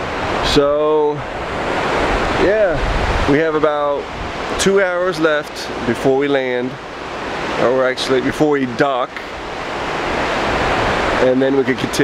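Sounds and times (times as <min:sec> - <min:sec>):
wind rushing: 0:00.0 - 0:11.3
churning wake water: 0:00.0 - 0:12.0.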